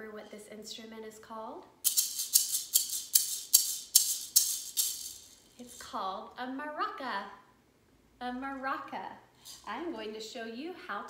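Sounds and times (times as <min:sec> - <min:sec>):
maraca shaking: 0:01.8 - 0:05.6.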